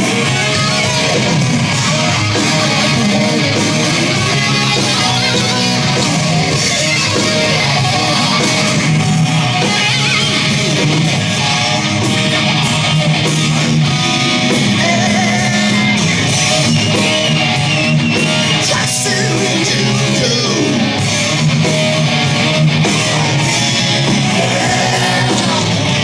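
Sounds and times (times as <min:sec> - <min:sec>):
drums: 0:00.0 - 0:26.0
electric guitars: 0:00.0 - 0:26.0.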